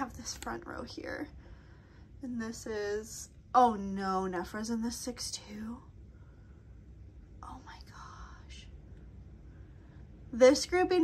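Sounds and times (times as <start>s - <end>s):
woman whispering: 7.4s - 8.7s.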